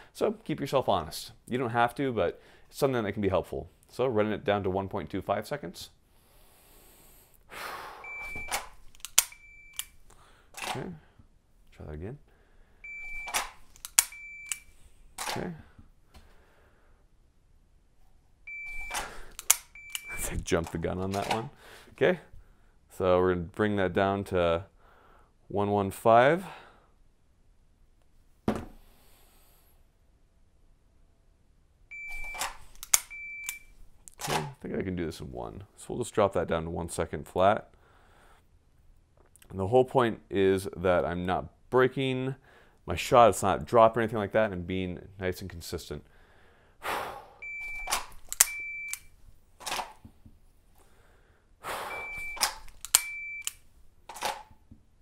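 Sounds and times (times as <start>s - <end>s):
shot timer beep: 8.0s - 8.6s, 12.9s - 13.5s, 18.5s - 19.1s, 19.7s - 20.2s, 31.9s - 32.5s, 33.1s - 33.7s, 47.4s - 49.1s, 51.9s - 53.6s
pistol dry-fire click: 8.5s - 10.0s, 13.3s - 15.3s, 18.9s - 20.1s, 32.2s - 33.6s, 47.9s - 49.1s, 52.4s - 53.6s.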